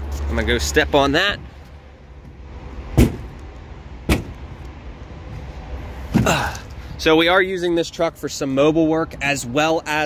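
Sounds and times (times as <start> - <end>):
heavy footsteps on truck bed: 1.5 - 4.6, 5.2 - 6.6.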